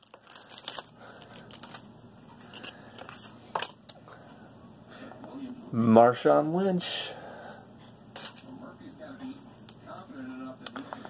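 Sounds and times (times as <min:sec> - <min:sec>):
foil wrapper crinkling and tearing: 0:00.0 - 0:03.7, 0:08.2 - 0:08.5
cards being handled: 0:00.0 - 0:04.0, 0:08.1 - 0:08.5.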